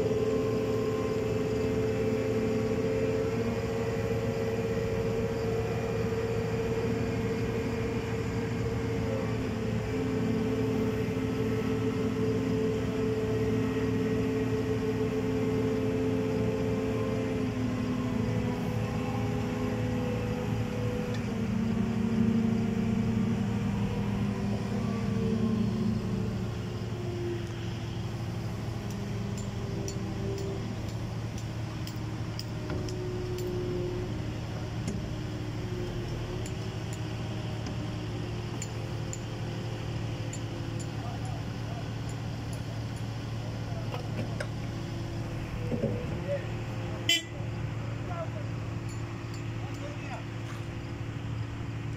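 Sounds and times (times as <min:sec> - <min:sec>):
diesel engine running: 0:00.0 - 0:51.9.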